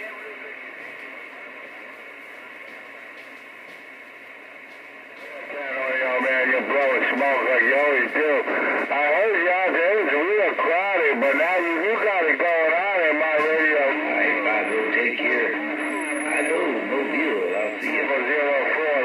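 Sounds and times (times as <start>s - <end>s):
radio operator speaking: 5.2s - 19.0s
wordless voice over radio speaker: 5.2s - 19.0s
steady held tone: 12.9s - 19.0s.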